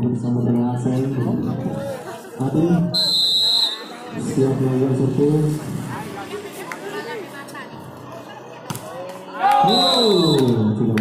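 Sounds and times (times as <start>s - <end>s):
faint background voices: 0.0s - 9.7s.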